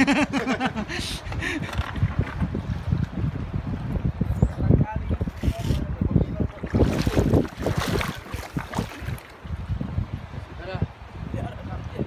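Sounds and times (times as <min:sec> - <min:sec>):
wind buffeting microphone: 0:00.0 - 0:12.0
feet wading through water: 0:06.5 - 0:09.5.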